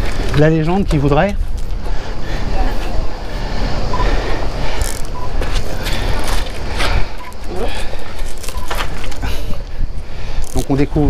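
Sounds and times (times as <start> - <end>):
low outdoor rumbling: 0.0 - 11.0
faint voices: 0.2 - 11.0.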